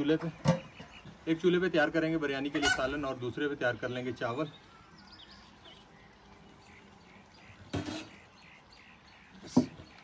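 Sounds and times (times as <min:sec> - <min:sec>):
faint birds chirping: 0:00.0 - 0:10.0.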